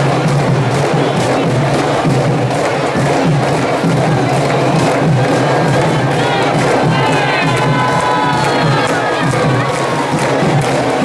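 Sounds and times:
crowd cheering and shouting: 0:00.0 - 0:11.0
hand drums playing parade rhythm: 0:00.0 - 0:11.0
voices crying out: 0:05.0 - 0:10.9.

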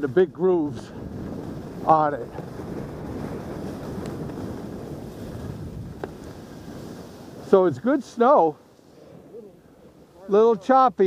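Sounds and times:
skis scraping over snow: 0:00.0 - 0:11.0
wind rushing over microphone: 0:00.0 - 0:11.0.

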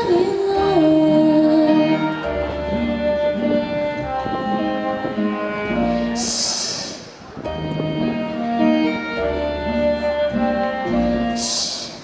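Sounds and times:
held string-like notes: 0:00.0 - 0:12.0.

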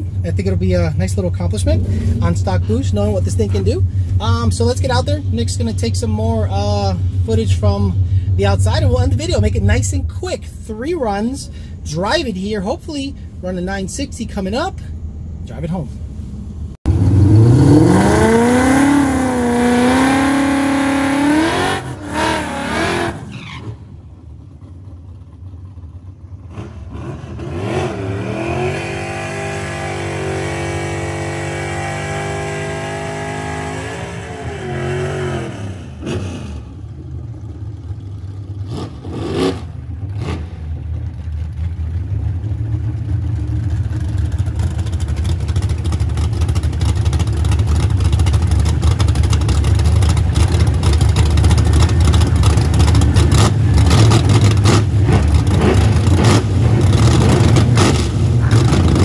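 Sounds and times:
car engine revving: 0:00.0 - 0:11.2, 0:16.8 - 0:59.0.

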